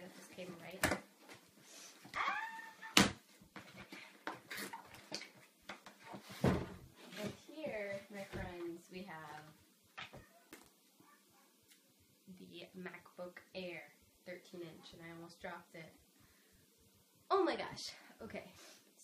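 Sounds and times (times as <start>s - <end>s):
woman's excited vocal sounds: 2.1s - 3.0s.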